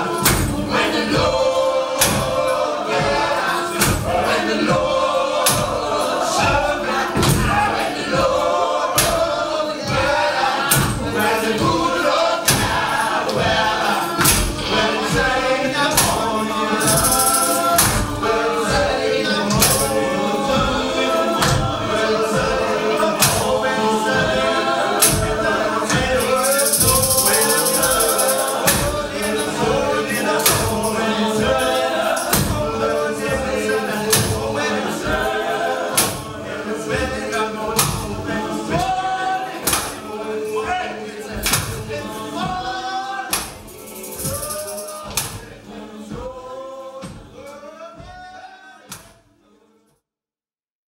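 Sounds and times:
hand percussion strikes: 0.0 - 36.4, 37.7 - 46.3
choir singing in harmony: 0.0 - 49.9.

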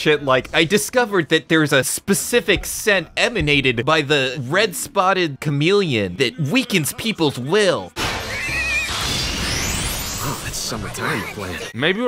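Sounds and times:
cartoon creature screech: 8.0 - 10.5.

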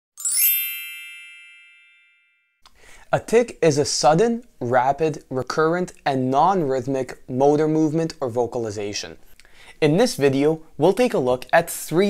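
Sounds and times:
bright bell-like chime: 0.2 - 2.6.

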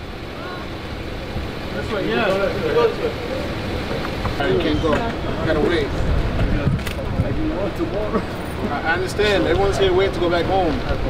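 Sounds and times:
truck engine idling: 0.0 - 11.0
faint voices: 0.2 - 11.0.

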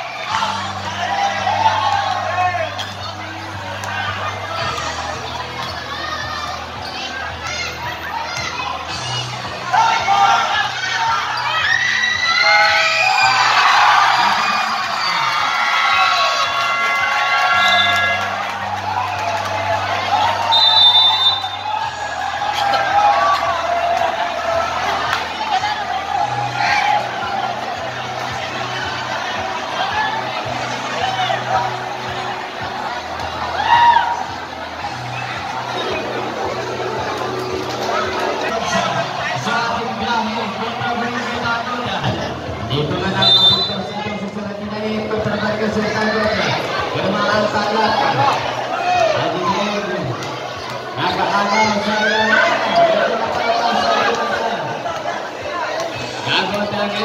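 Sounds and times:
crowd cheering and shouting: 0.0 - 57.0.

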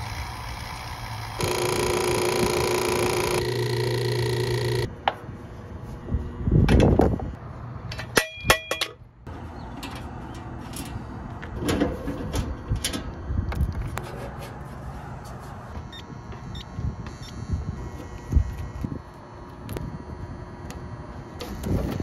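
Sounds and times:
machine motor humming: 0.0 - 4.9.

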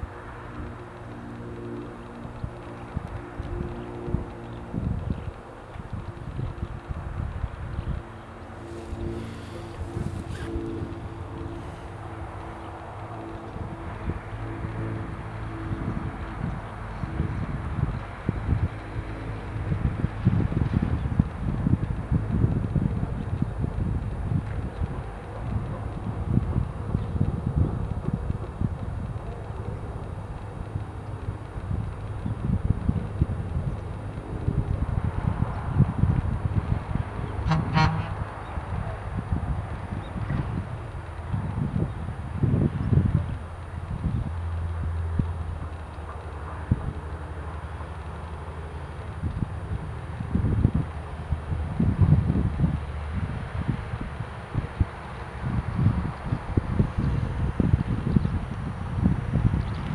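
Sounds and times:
steady low hum: 0.0 - 59.9
wind buffeting microphone: 0.0 - 59.9.

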